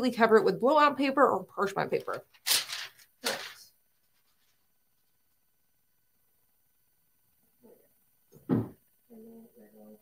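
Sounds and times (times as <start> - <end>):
parchment paper rustle: 1.8 - 5.2.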